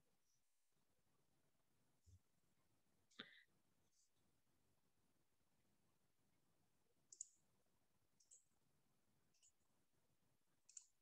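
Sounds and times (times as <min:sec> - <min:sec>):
faint high-pitched clicks: 0:07.1 - 0:07.5, 0:08.2 - 0:08.6, 0:10.6 - 0:11.0.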